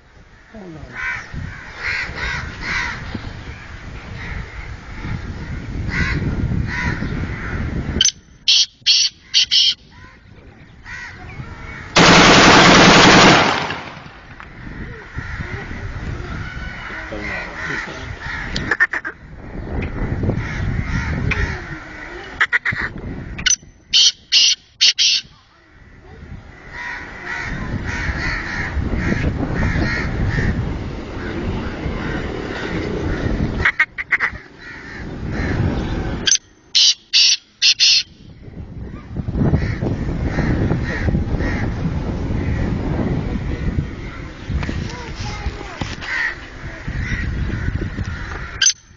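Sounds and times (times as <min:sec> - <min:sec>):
bird shrill calls: 0:08.0 - 0:10.0, 0:23.4 - 0:25.4, 0:36.3 - 0:38.3
steady low rumble: 0:09.2 - 0:23.5.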